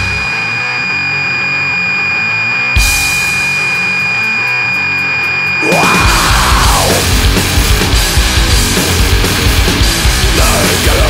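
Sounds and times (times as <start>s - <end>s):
high-pitched whine: 0.0s - 11.0s
rock music: 0.0s - 11.0s
sparse guitar: 0.0s - 11.0s.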